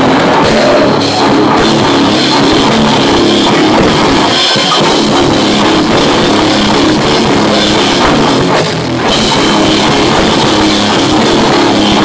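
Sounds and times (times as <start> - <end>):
heavy rock band playing live: 0.0 - 12.0.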